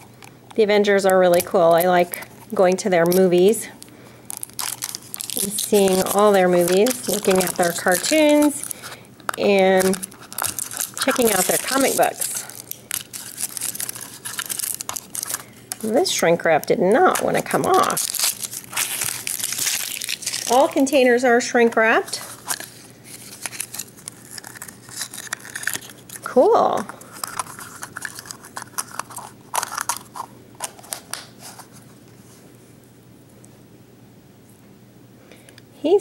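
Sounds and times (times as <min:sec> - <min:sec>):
plastic packaging crackling: 0:00.0 - 0:21.2, 0:21.8 - 0:31.9
shrink wrap crinkling: 0:00.0 - 0:32.5.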